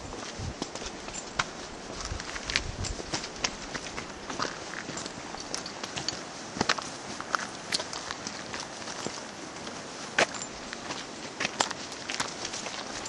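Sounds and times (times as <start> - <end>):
footsteps crunching on dirt trail: 0.0 - 13.0
steady outdoor hiss: 0.0 - 13.0.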